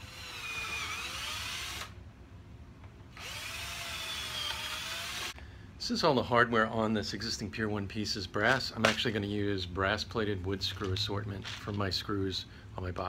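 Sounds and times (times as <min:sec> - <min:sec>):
power drill whining: 0:00.0 - 0:02.0, 0:03.1 - 0:05.4.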